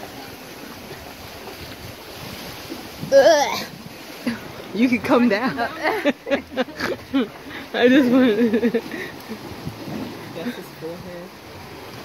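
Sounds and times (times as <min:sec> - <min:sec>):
sea waves washing against rocks: 0:00.0 - 0:12.0
wind buffeting microphone: 0:00.8 - 0:12.0.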